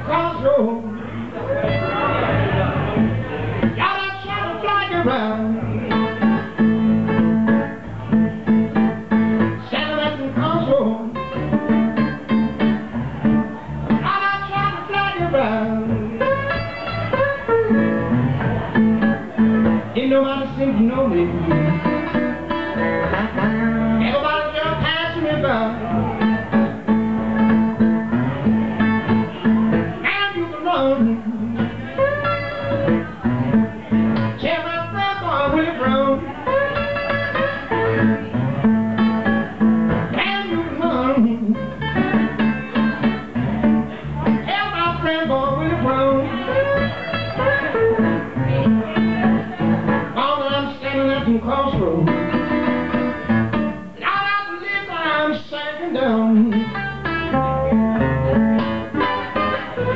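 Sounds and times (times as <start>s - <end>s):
electric guitar blues: 0.0s - 59.9s
resonator guitar: 0.0s - 59.9s.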